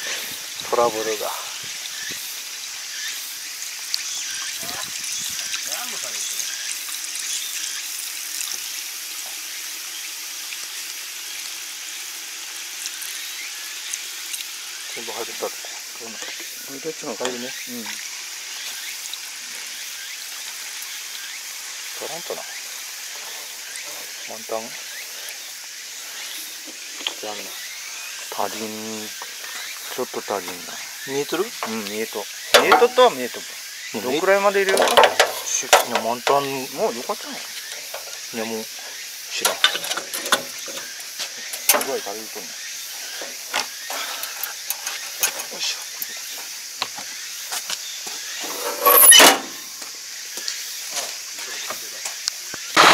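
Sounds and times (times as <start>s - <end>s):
steady hiss: 0.0s - 52.9s
fuel pouring into tank: 28.3s - 46.1s
person speaking: 30.0s - 37.5s
mud scraping and knocking: 32.6s - 33.2s, 34.6s - 36.5s, 39.4s - 42.5s.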